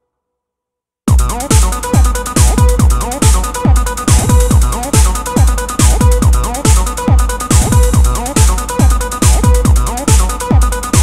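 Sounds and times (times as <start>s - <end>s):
deep kick drum: 1.1s - 11.0s
hi-hats: 1.1s - 11.0s.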